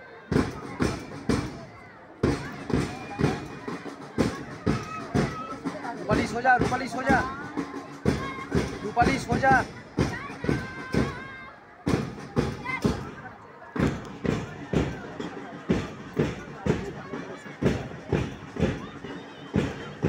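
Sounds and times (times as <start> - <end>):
voices: 0.0 - 20.0
drum beating marching time: 0.3 - 20.0.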